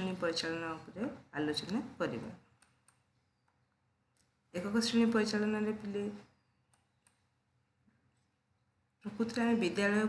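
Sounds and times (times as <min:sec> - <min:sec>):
faint computer mouse clicks: 0:02.5 - 0:04.4, 0:06.7 - 0:07.3.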